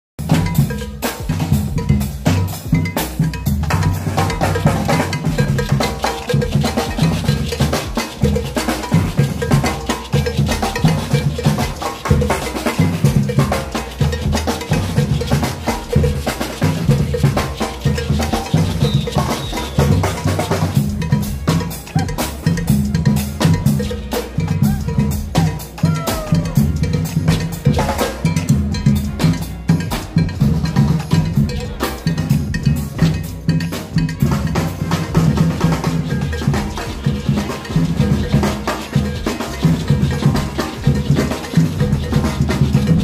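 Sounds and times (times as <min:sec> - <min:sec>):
marching percussion band: 0:00.2 - 0:43.0.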